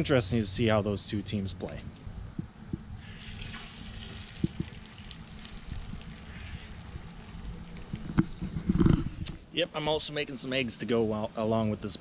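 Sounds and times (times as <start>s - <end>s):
eggs sizzling in frying pan: 3.0s - 7.3s.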